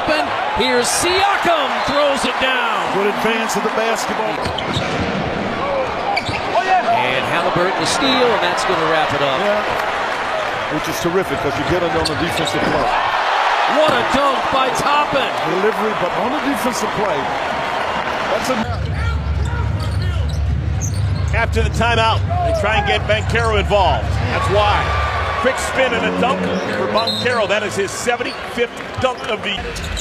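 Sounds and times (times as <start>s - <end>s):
arena crowd noise: 0.0s - 30.0s.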